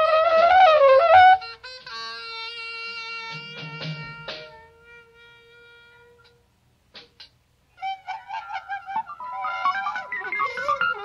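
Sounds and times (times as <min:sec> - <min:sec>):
held instrument note: 0:00.0 - 0:06.4, 0:07.7 - 0:11.0
short squeaky notes: 0:01.1 - 0:06.4, 0:07.8 - 0:11.0
band playing high wavering notes: 0:01.4 - 0:06.4, 0:07.8 - 0:11.0.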